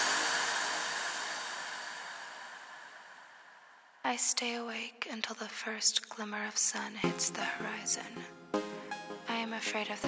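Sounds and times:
chillstep music: 0:07.0 - 0:10.0.

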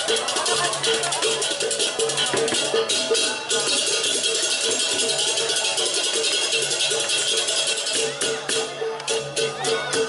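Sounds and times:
gamelan gongs and metallophones: 0:00.0 - 0:10.0.

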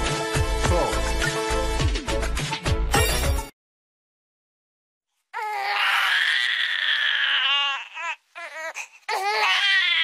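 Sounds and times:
baby crying: 0:05.4 - 0:10.0.

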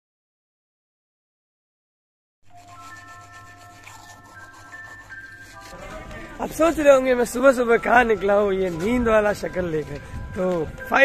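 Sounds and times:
toothbrush scrubbing teeth: 0:02.5 - 0:07.9
soft background music: 0:02.5 - 0:11.0.

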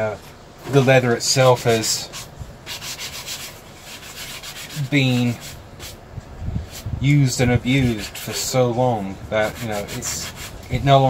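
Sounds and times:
sanding block scuffing leather: 0:00.8 - 0:06.0, 0:06.7 - 0:10.6.

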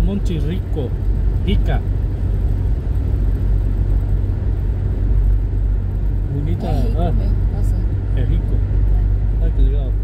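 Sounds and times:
car cabin road rumble: 0:00.0 - 0:10.0.

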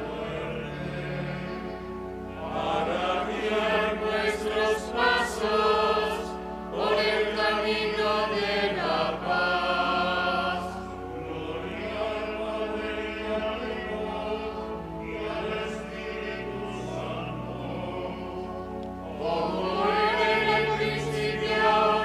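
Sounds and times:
choir singing slow chant: 0:00.0 - 0:22.0
low sustained accompaniment: 0:00.0 - 0:22.0.

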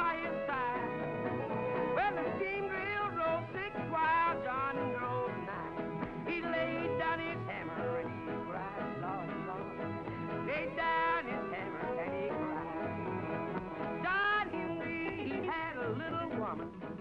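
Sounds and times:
country band music: 0:00.0 - 0:17.0.

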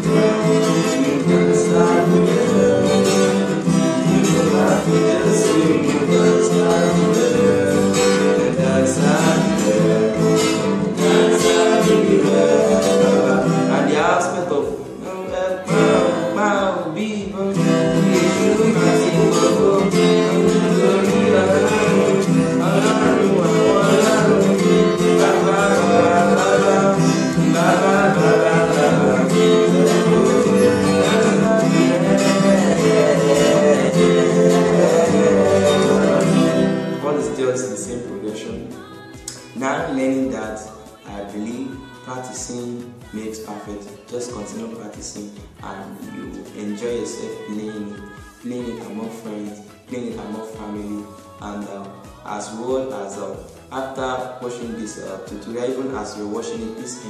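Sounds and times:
acoustic guitar strumming: 0:00.0 - 0:57.0
person singing: 0:00.0 - 0:57.0.

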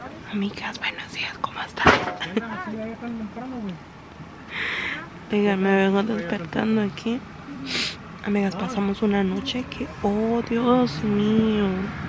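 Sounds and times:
woman whispering: 0:00.2 - 0:01.9.

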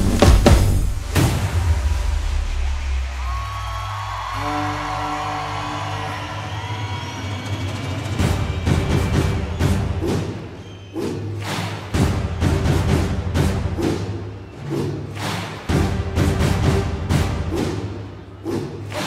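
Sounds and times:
heavy drum strikes: 0:00.0 - 0:03.0
brass band playing a march: 0:04.4 - 0:06.6.

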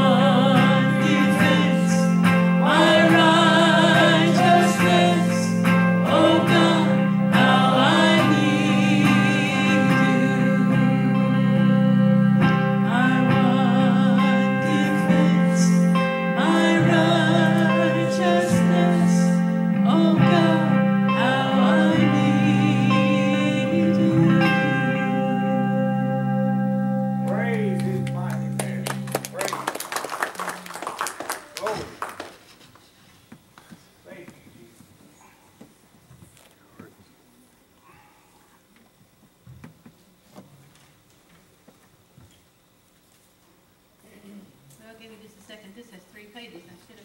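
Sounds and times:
man singing along: 0:00.0 - 0:11.8
woman singing with vibrato: 0:00.0 - 0:26.2
sustained low chords: 0:00.0 - 0:29.7
electric guitar: 0:00.0 - 0:32.0
applause: 0:27.5 - 0:32.8.

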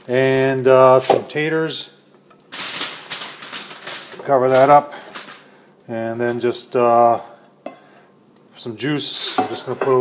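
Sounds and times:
potato chunks clattering onto foil: 0:02.5 - 0:05.5.

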